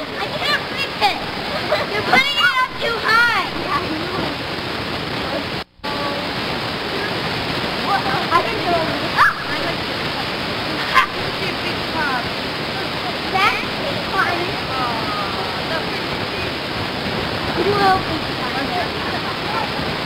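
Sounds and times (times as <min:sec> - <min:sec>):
children calling: 0:00.0 - 0:04.4, 0:07.8 - 0:16.6
steady rushing noise: 0:00.0 - 0:20.0.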